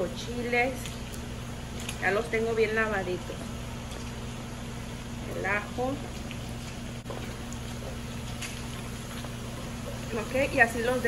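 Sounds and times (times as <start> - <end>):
stove hum and hiss: 0.0 - 11.0.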